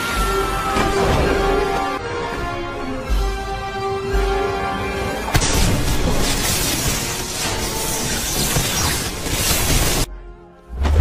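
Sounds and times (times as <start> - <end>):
orchestral score: 0.0 - 11.0
crashing and shattering effects: 5.3 - 10.1.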